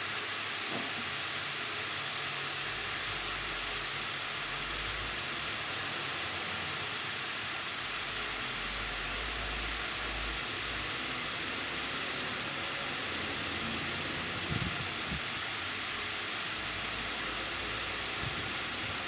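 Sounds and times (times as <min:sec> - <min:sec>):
steady hiss: 0:00.0 - 0:19.0.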